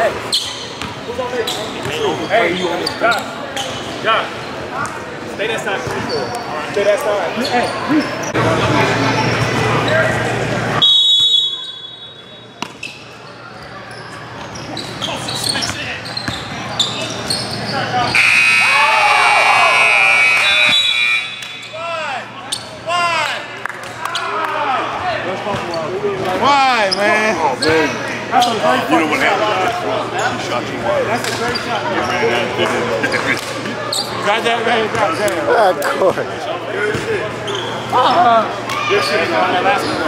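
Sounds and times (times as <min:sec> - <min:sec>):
scoreboard buzzer: 0:18.1 - 0:21.8.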